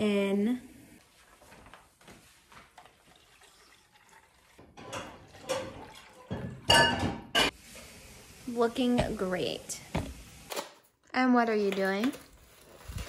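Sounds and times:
water pouring into plastic cups: 0:02.7 - 0:06.6.

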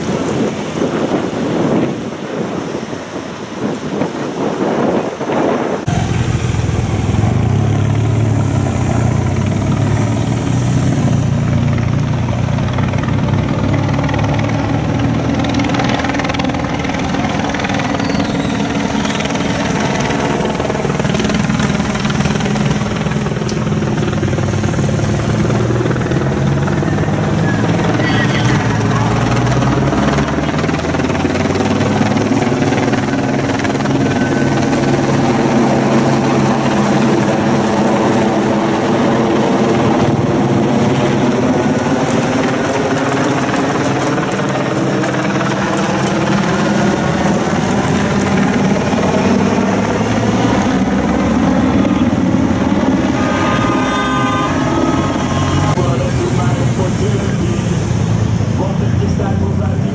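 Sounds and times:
bicycles passing: 0:00.0 - 0:59.9
helicopter engine drone overhead: 0:00.0 - 0:59.9
motorcycles: 0:00.0 - 0:59.9.

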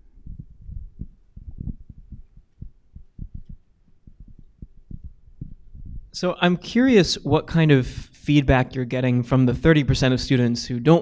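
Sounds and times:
dull low thumps: 0:00.0 - 0:06.2.

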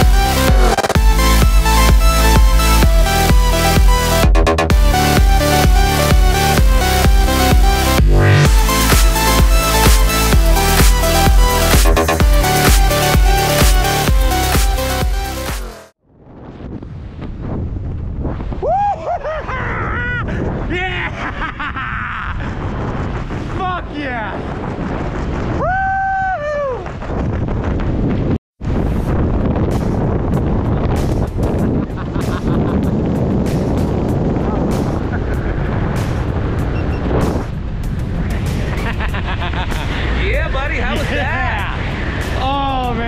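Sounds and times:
wind buffeting microphone: 0:16.1 - 0:43.0
man whooping: 0:18.6 - 0:21.2, 0:25.6 - 0:26.8.

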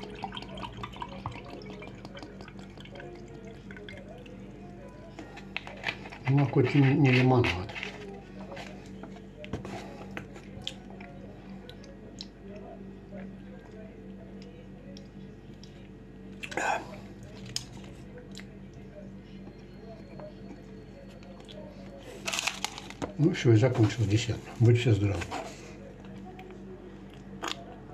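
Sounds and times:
steady low hum: 0:00.0 - 0:27.9
person chewing soft bread: 0:07.1 - 0:18.8, 0:25.4 - 0:27.9
person chewing: 0:27.1 - 0:27.8.

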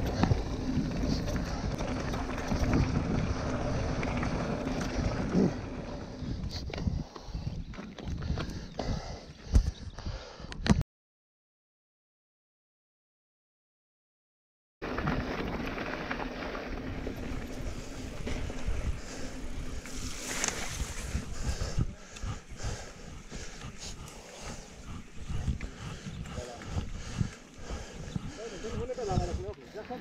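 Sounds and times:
bike rattling over gravel: 0:00.0 - 0:06.6, 0:14.8 - 0:30.0
wind buffeting microphone: 0:00.0 - 0:10.3, 0:16.8 - 0:29.6.

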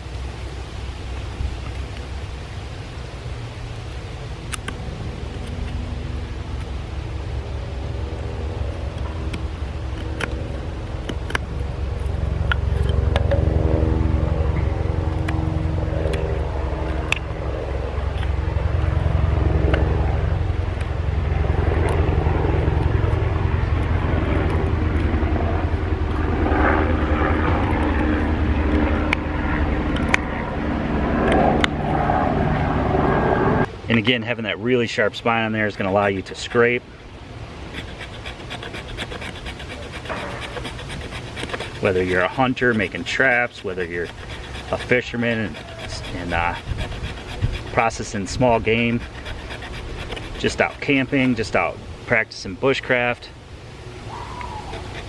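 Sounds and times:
engine droning: 0:00.0 - 0:55.0
knife scraping wood: 0:08.7 - 0:13.4, 0:35.8 - 0:36.8, 0:37.5 - 0:51.7, 0:54.7 - 0:55.0.

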